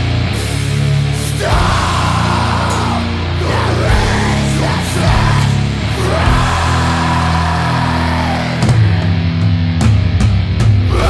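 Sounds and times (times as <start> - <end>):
bass guitar: 0.0 - 11.0
distorted electric guitar: 0.0 - 11.0.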